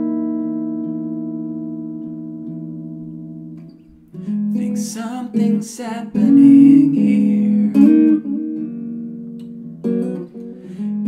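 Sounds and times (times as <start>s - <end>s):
clean electric guitar chord: 0.0s - 11.0s.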